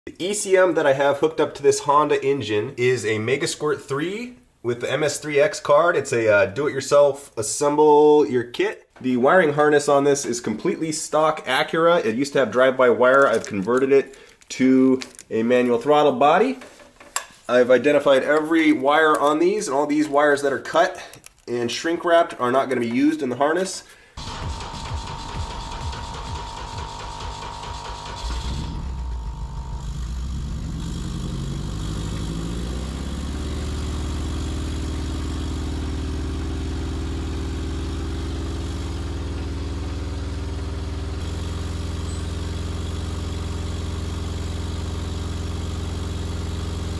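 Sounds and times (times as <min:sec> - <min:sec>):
car engine cranking and idling: 0:24.2 - 0:46.9.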